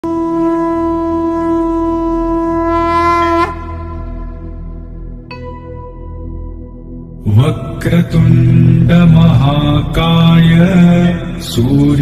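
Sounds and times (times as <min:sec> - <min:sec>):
conch shell blown: 0:00.0 - 0:06.0
low hum: 0:00.0 - 0:12.0.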